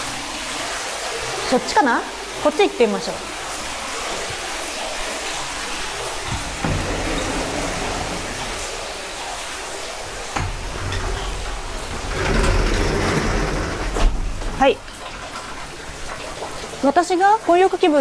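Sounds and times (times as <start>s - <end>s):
water pouring into a bath: 0.0s - 18.0s
glass door opening: 5.7s - 14.8s.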